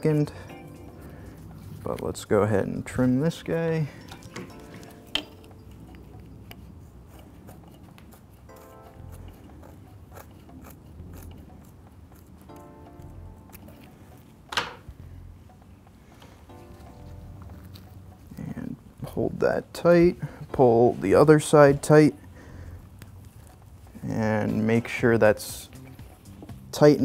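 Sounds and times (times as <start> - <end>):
quiet background music: 0.0 - 27.0
scissors snipping: 5.9 - 14.6.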